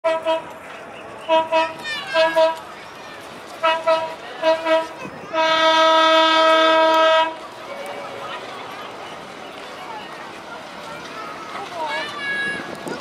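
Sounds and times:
vehicle horn tooting: 3.6 - 7.4.

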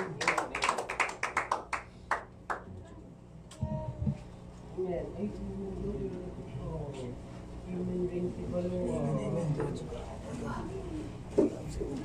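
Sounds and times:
small group clapping: 0.0 - 2.8.

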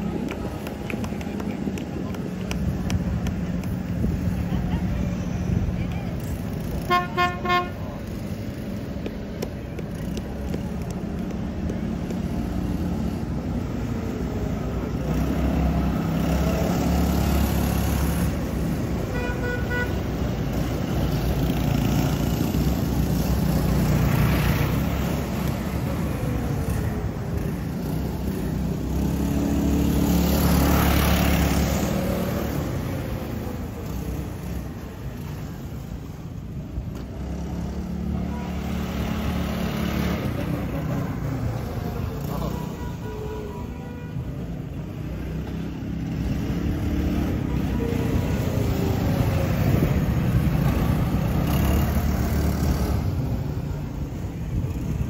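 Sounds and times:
vehicle engines driving slowly: 0.0 - 55.0
car horn toots: 6.9 - 7.8.

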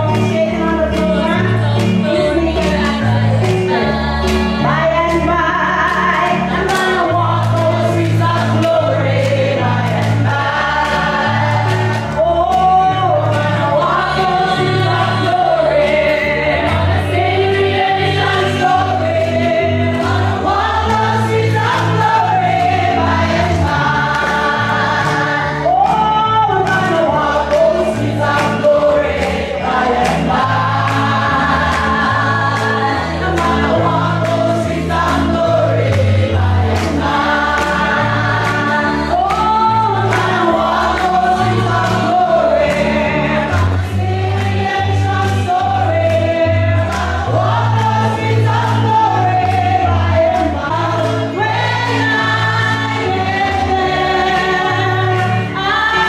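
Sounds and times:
clapping beat: 0.0 - 56.0
congregation singing a gospel song: 0.0 - 56.0.

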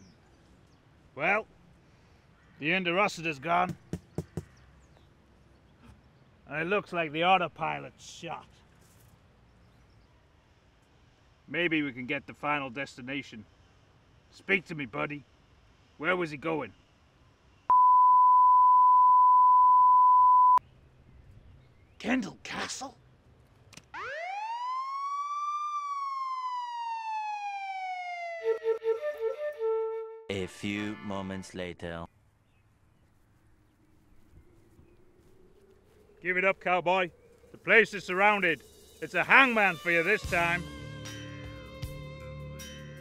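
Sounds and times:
siren wail: 23.9 - 30.3.

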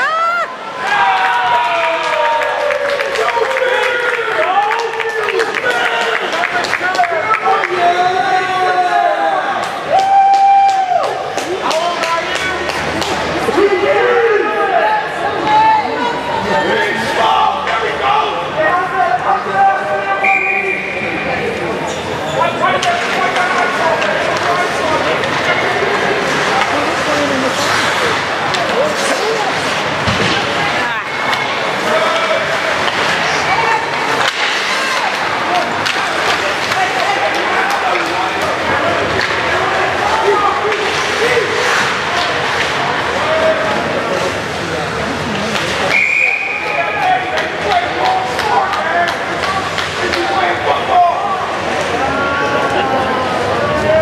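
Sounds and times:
spectators chattering and calling out: 0.0 - 54.0
sticks and skates clattering on ice: 9.6 - 13.6, 22.6 - 44.4, 46.6 - 51.0
referee whistle blast: 45.9 - 46.8.

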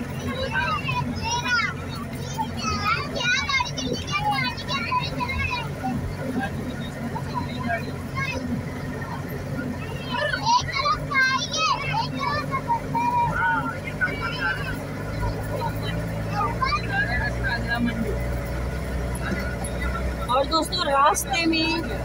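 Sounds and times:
van engine hum: 0.0 - 22.0
voices talking: 0.0 - 22.0.

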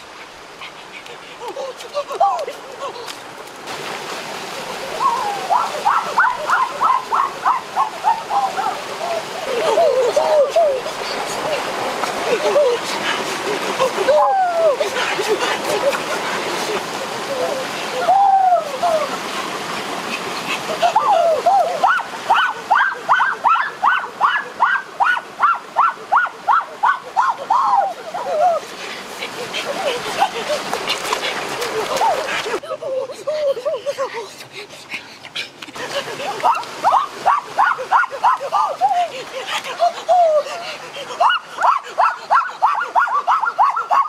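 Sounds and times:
water running over rocks: 0.0 - 44.0
boy whooping: 8.0 - 10.9, 13.8 - 14.9, 17.3 - 19.1, 20.8 - 28.7.

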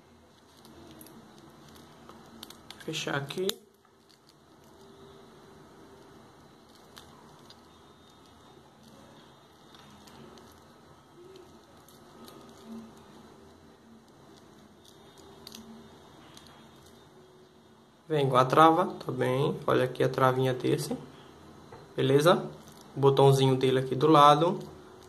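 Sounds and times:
watch bracelet clicks and rustles: 0.3 - 4.9, 6.6 - 13.2, 14.0 - 17.0.

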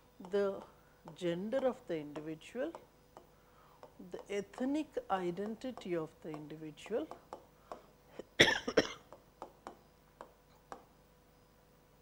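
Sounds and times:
woman coughing: 8.2 - 9.1.

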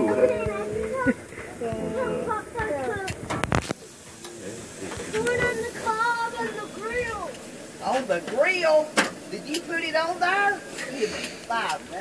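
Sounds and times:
child babbling: 0.0 - 3.2
metal tongs clacking on grill grate: 8.2 - 9.7, 10.8 - 11.9.

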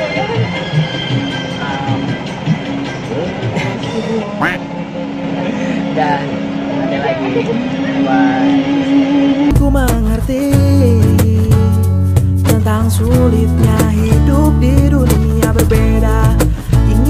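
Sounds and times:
indistinct voices: 0.0 - 11.6
music: 0.0 - 17.0
bus engine hum: 1.8 - 9.5.

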